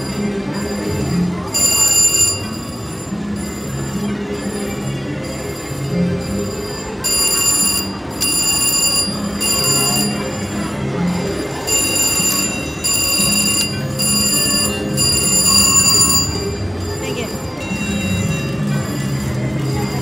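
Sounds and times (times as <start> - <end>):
casino hum: 0.0 - 20.0
slot machine win bell ringing: 0.0 - 20.0.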